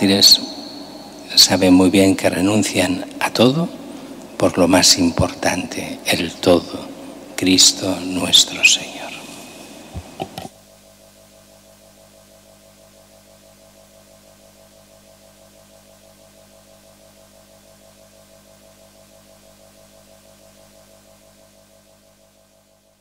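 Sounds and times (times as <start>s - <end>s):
sustained synthesizer chord: 0.0s - 10.0s, 10.6s - 23.0s.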